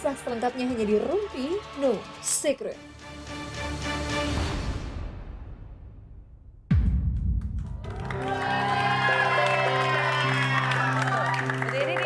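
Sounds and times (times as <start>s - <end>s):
studio theme music: 0.0s - 12.0s
deep boom: 4.8s - 7.9s.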